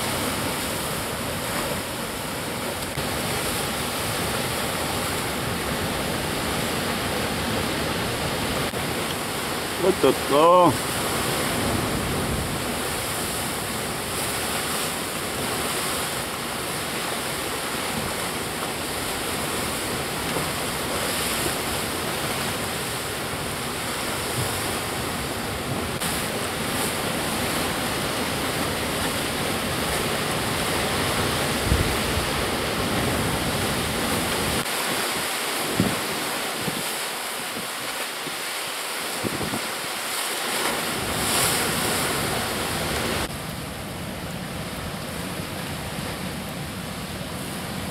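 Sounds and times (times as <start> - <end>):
surf breaking over rocks: 0.0 - 47.9.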